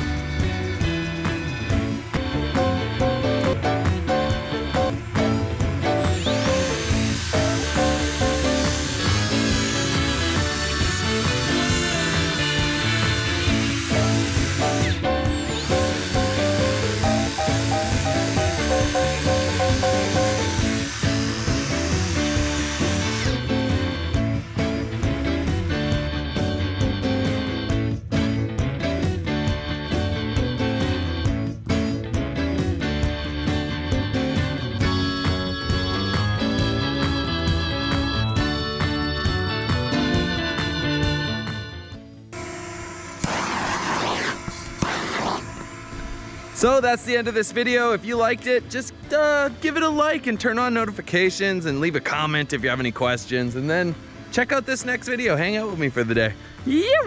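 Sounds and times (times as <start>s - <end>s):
belt sander on wood: 0.0s - 27.8s, 42.3s - 56.6s
background music: 0.0s - 42.3s, 44.9s - 57.0s
gas torch flame rushing: 4.7s - 24.2s, 42.9s - 46.7s.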